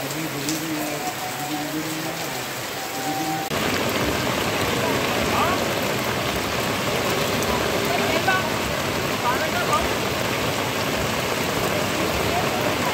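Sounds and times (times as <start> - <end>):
heavy rain pouring: 0.0 - 12.9.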